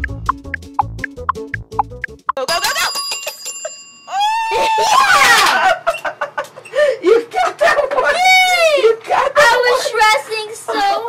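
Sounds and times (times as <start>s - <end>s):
desk service bell ringing: 2.8s - 4.1s
girl crying out excitedly: 4.1s - 5.5s.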